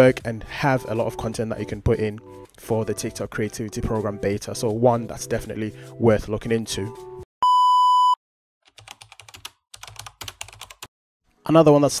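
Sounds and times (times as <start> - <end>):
loud electronic beep: 7.4 - 8.2
typing on computer keyboard: 8.6 - 10.9.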